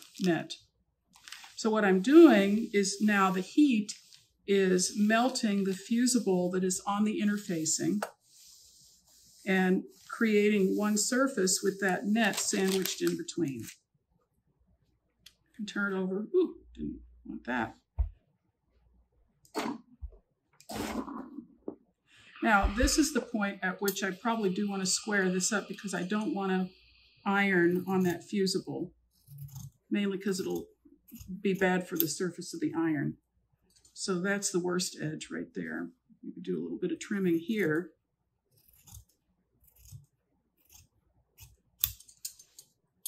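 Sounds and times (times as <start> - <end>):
steam iron scraping paper: 1.2 - 13.2, 22.4 - 26.7
scissors snipping sheet: 40.7 - 42.7.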